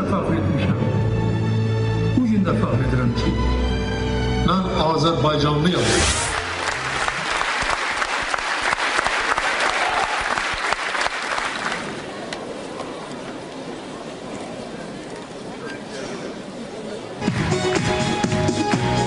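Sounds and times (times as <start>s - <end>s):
audience applauding: 6.1s - 12.2s.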